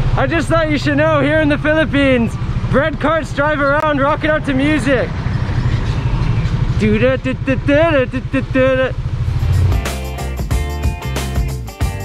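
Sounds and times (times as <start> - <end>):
pickup truck engine rumble: 0.0 - 12.0.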